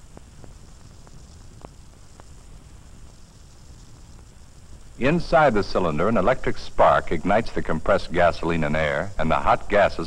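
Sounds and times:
faint clicks: 0.0s - 5.0s
film soundtrack hiss: 0.0s - 10.0s.

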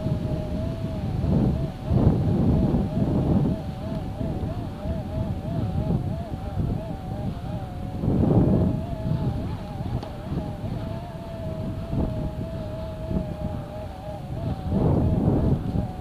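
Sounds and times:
wind rumble: 0.0s - 16.0s.

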